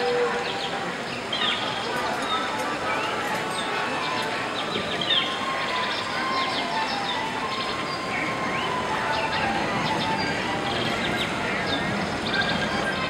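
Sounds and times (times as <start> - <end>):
murmur of diners' voices: 0.0 - 13.0.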